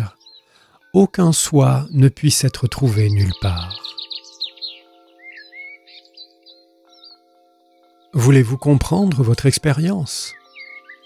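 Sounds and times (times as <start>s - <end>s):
bird chirps: 0.0s - 0.8s, 1.6s - 11.0s
soft background music chord: 0.0s - 11.0s.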